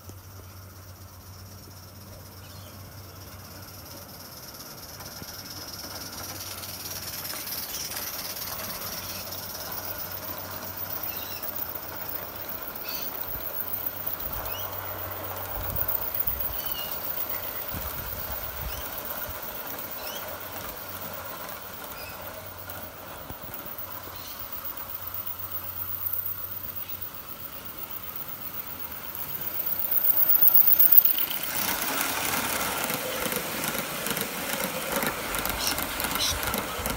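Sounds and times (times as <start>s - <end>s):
model steam locomotive hissing: 0.0s - 36.9s
train wheels rolling on track: 0.0s - 36.9s.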